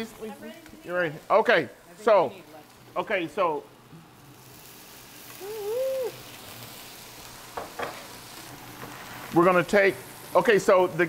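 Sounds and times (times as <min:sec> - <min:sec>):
wine hissing in hot pan: 0:00.0 - 0:11.0
person humming: 0:05.4 - 0:06.3.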